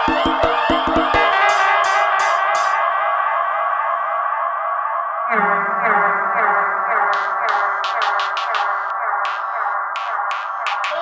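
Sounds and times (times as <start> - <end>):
sustained synth chord: 5.3 - 9.4.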